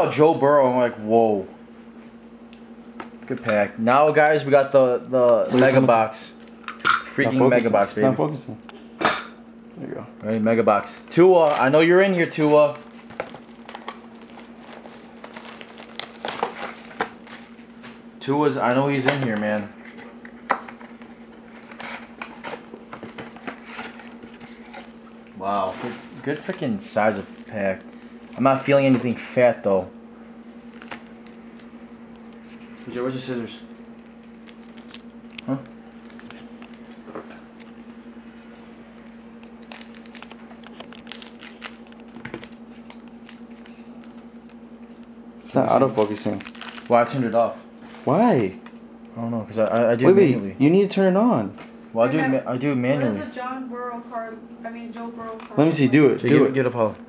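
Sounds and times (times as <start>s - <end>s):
faint steady hum: 0.0s - 57.0s
plastic packaging crinkling: 12.9s - 17.9s, 30.5s - 32.5s, 33.9s - 45.1s, 45.7s - 47.2s.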